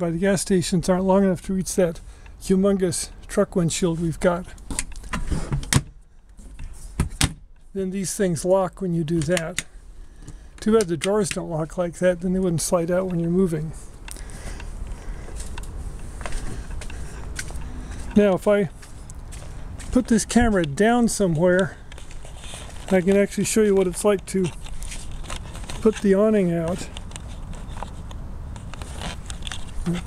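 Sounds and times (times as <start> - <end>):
person speaking: 0.0 - 4.6, 7.7 - 9.7, 10.6 - 14.4, 17.0 - 18.8, 19.8 - 22.0, 22.8 - 24.7, 25.7 - 27.0, 29.8 - 30.0
camera handling rumble: 12.9 - 18.2, 21.6 - 30.0.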